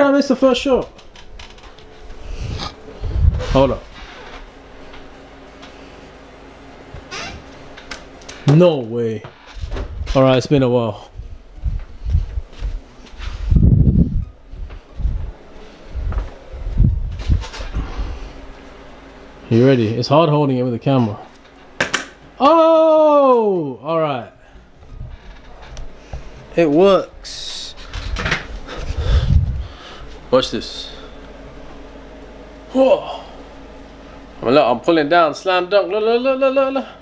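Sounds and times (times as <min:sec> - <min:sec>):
low rumble: 0:01.0 - 0:05.0, 0:09.6 - 0:18.2, 0:24.6 - 0:26.0, 0:27.1 - 0:30.1
footsteps: 0:11.2 - 0:17.9
man breathing hard: 0:27.8 - 0:30.2.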